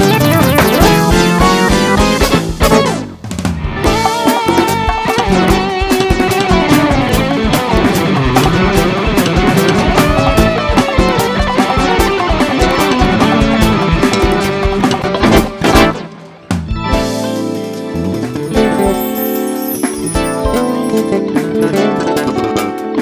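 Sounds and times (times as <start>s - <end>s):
live band music: 0.0s - 23.0s.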